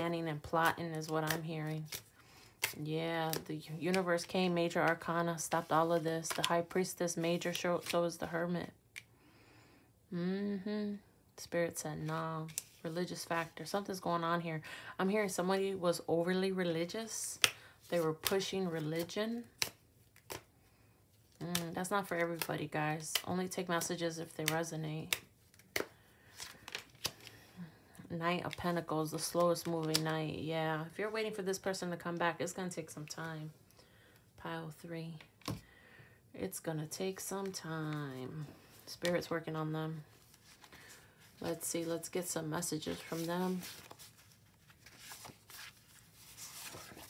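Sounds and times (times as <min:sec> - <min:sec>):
cards rustling and sliding: 0:00.0 - 0:08.4, 0:12.0 - 0:13.3, 0:17.3 - 0:20.6, 0:21.2 - 0:27.4, 0:28.5 - 0:30.2, 0:37.2 - 0:47.0.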